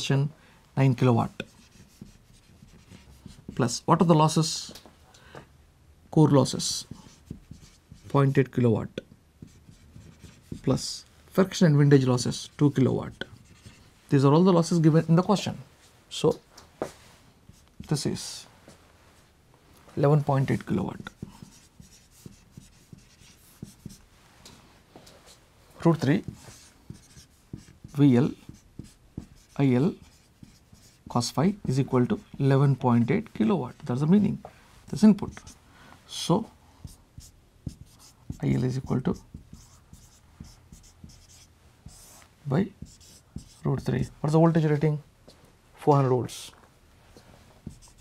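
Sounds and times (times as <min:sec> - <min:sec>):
marker pen writing on whiteboard: 0:01.2 - 0:03.9, 0:06.6 - 0:08.3, 0:08.9 - 0:11.0, 0:12.2 - 0:13.9, 0:15.4 - 0:18.2, 0:20.0 - 0:24.1, 0:24.9 - 0:35.6, 0:36.8 - 0:44.2, 0:47.2 - 0:48.0.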